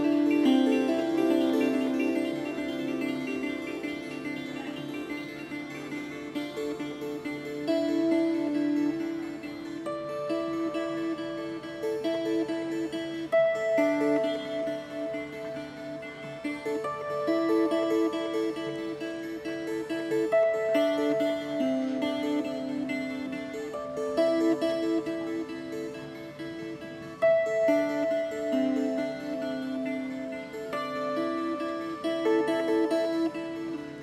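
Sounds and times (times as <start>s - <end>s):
plucked board zither: 0.0s - 34.0s.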